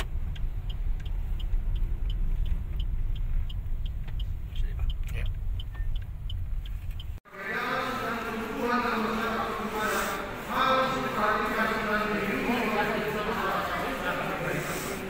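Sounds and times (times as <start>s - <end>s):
light regular ticking: 0.0s - 7.2s
car engine and road rumble: 0.0s - 15.0s.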